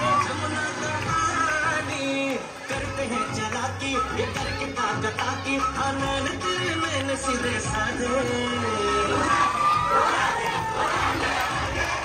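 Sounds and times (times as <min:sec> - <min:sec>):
crowd cheering and shouting: 0:00.0 - 0:12.0
dance music: 0:00.0 - 0:12.0.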